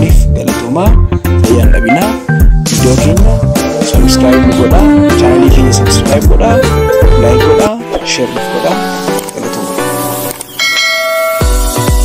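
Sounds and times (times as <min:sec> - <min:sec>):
electronic music with kick drum: 0:00.0 - 0:12.0
bell-like notification chime: 0:10.6 - 0:11.6.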